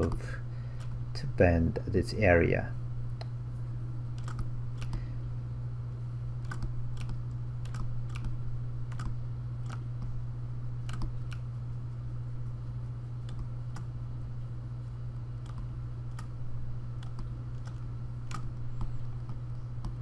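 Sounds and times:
steady low hum: 0.0 - 20.0
mouse and keyboard clicks: 4.2 - 5.0, 6.4 - 9.8, 10.8 - 11.4, 15.4 - 16.3, 17.0 - 20.0.

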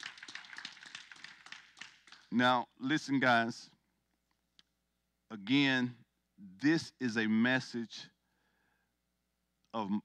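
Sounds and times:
scattered handclaps: 0.0 - 2.5.

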